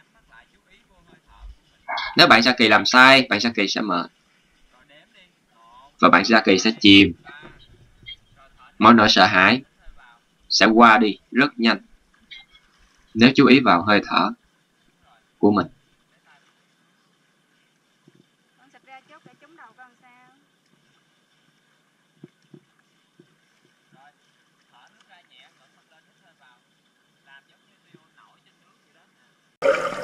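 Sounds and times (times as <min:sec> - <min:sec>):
underwater rush of water and bubbles: 0:29.6 - 0:30.0.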